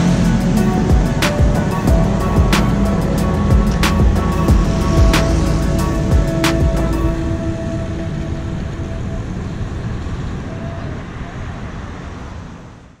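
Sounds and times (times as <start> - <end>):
background music: 0.0 - 10.5
wind and road noise: 0.0 - 13.0.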